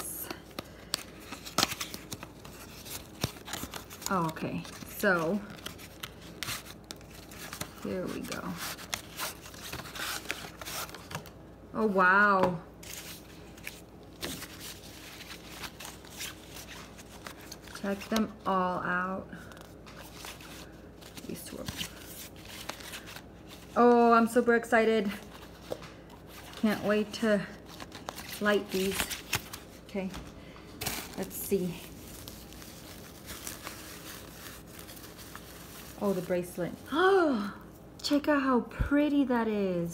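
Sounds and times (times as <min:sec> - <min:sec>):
tissue paper rustling: 0:00.8 - 0:11.3, 0:12.8 - 0:18.2, 0:30.8 - 0:37.2
cardboard packets scraping and rubbing: 0:01.2 - 0:11.3.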